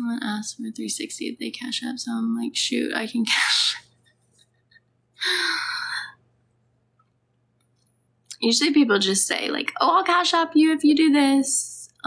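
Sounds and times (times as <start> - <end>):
woman sighing: 5.2 - 6.2.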